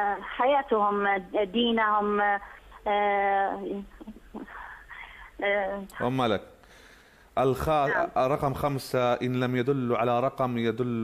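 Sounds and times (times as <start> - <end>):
woman's voice over telephone: 0.0 - 4.0.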